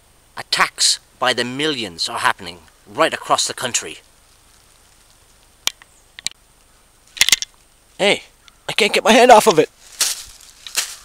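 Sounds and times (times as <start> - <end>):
faint steady hiss: 0.0 - 11.0
dry leaves crackling: 3.8 - 6.0, 9.3 - 11.0
sharp clicks: 5.6 - 7.7.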